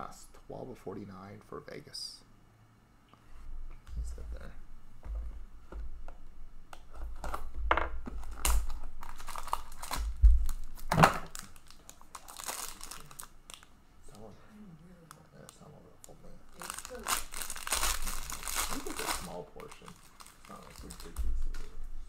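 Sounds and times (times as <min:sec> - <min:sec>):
plastic wrapper crinkling and tearing: 0:08.2 - 0:13.7, 0:15.1 - 0:21.7.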